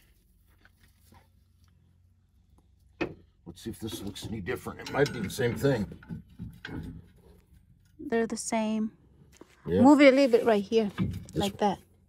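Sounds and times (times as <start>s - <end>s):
metal spring clicks and knocks: 3.9s - 7.0s.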